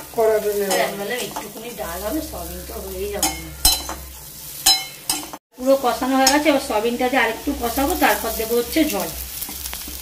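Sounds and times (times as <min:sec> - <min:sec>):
spatula scraping pan: 0:00.0 - 0:05.4
lentils and onions sizzling in pan: 0:00.0 - 0:10.0.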